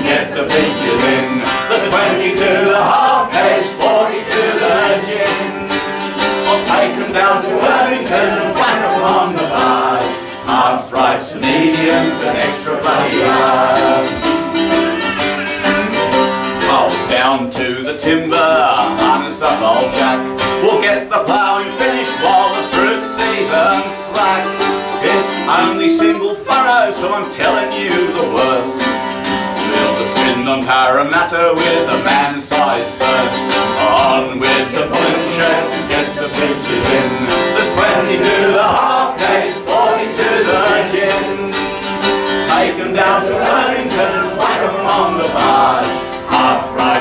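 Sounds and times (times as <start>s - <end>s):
man and woman singing: 0.0s - 47.0s
mandolin: 0.0s - 47.0s
strummed guitar: 0.0s - 47.0s.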